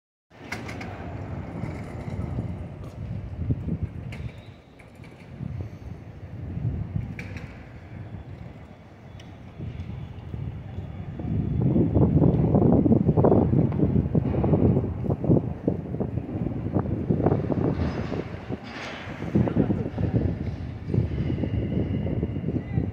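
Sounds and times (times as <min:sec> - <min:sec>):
city traffic rumble: 0:00.3 - 0:22.9.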